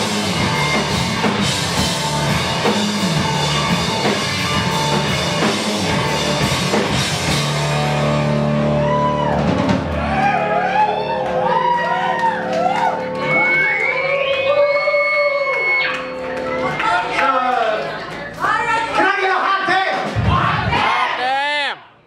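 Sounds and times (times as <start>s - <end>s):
live rock band playing: 0.0s - 14.6s
audience cheering and whooping: 8.4s - 16.8s.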